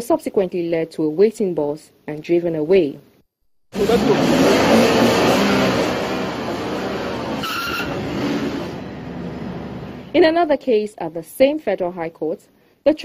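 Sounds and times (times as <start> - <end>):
van engine and tyres: 3.8 - 10.1
brief high tone: 7.4 - 8.1.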